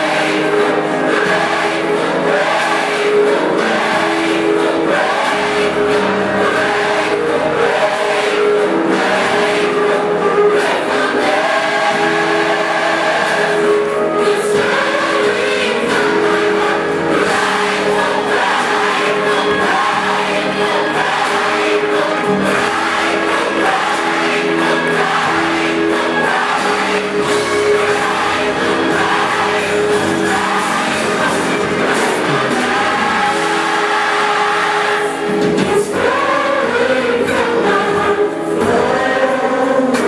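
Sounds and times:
gospel choir singing: 0:00.0 - 0:40.0.

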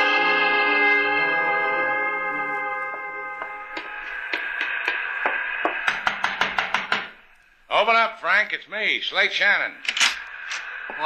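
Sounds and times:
musical bridge chord: 0:00.0 - 0:03.8.

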